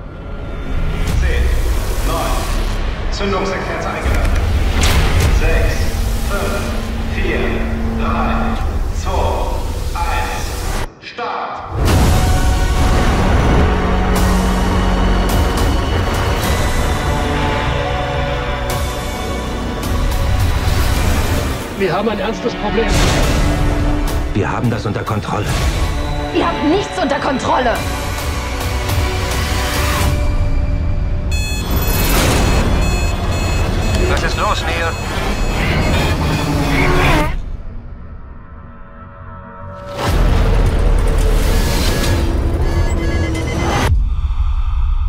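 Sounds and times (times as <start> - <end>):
tense film score: 0.0 - 45.0
sustained music tones: 1.1 - 10.9, 12.1 - 38.0.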